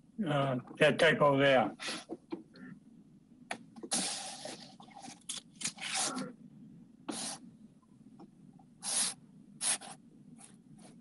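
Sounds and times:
faint low hum: 0.0s - 11.0s
rustling and hissing noises: 7.1s - 7.5s, 8.8s - 11.0s.

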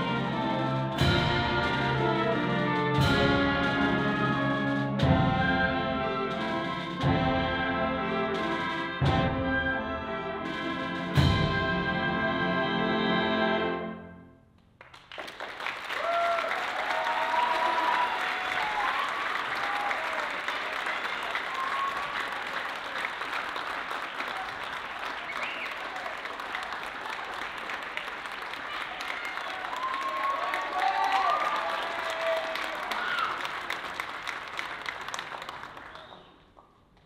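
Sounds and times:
audience applauding: 14.8s - 36.6s
shouted cheers: 15.9s - 22.7s, 24.1s - 33.8s.

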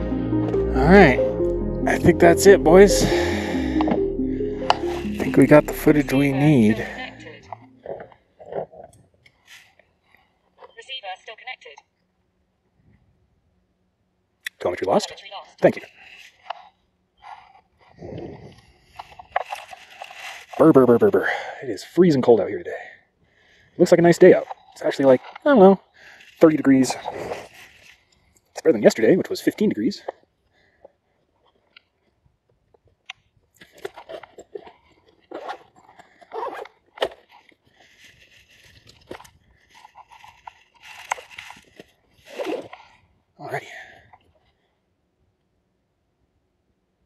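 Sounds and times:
rustling: 15.9s - 20.7s, 24.4s - 28.4s, 33.6s - 43.1s.

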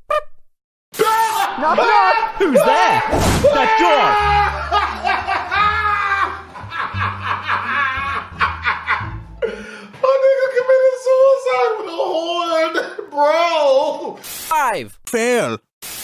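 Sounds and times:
man laughing hard: 4.1s - 9.6s.

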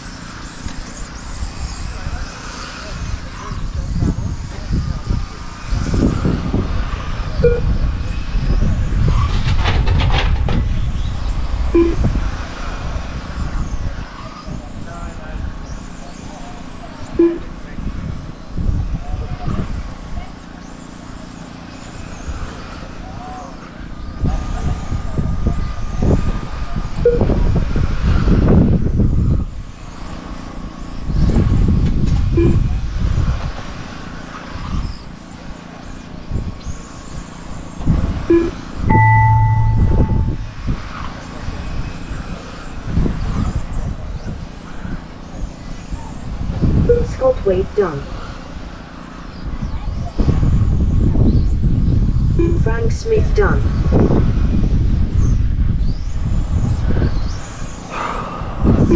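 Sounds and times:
rc car motors whining: 0.0s - 10.0s
wind on microphone: 0.0s - 58.9s
short electronic beep: 7.4s - 7.7s, 11.8s - 12.1s, 17.2s - 17.5s, 27.0s - 27.3s, 32.4s - 32.7s, 38.3s - 40.6s, 46.9s - 47.4s, 52.4s - 53.0s.

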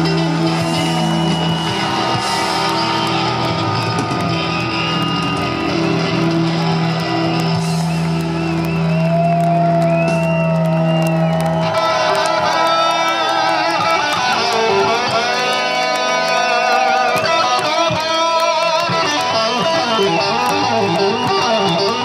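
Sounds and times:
crowd shouting: 0.0s - 22.0s
electric guitar solo: 0.0s - 22.0s
live rock band playing: 0.0s - 22.0s.

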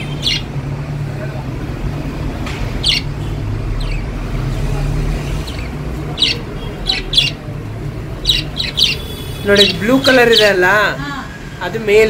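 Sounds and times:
budgerigars chirping: 0.0s - 0.6s, 2.7s - 4.4s, 5.0s - 10.8s.

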